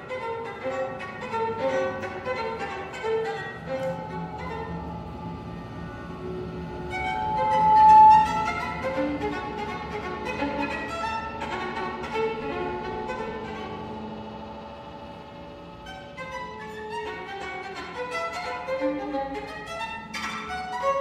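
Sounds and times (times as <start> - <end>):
solo violin: 0.0 - 14.3, 15.8 - 21.0.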